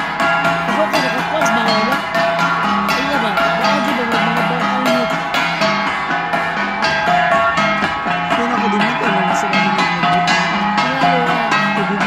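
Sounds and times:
flat gongs beaten rhythmically: 0:00.0 - 0:12.0.

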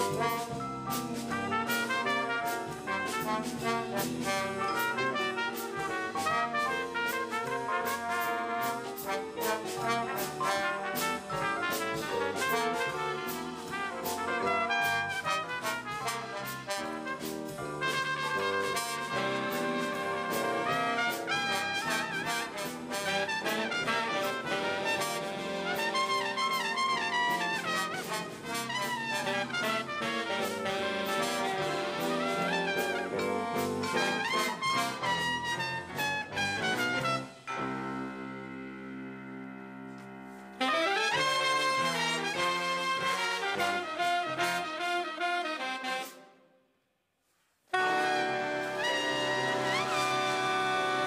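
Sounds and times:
jazz big band playing: 0:00.0 - 0:46.4, 0:47.7 - 0:51.0
trumpet: 0:00.0 - 0:46.7, 0:47.6 - 0:51.0.

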